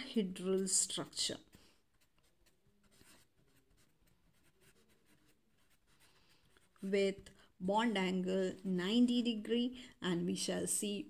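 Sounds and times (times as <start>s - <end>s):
woman speaking: 0.0s - 1.5s, 6.8s - 11.0s
marker scratching on paper: 0.0s - 8.0s.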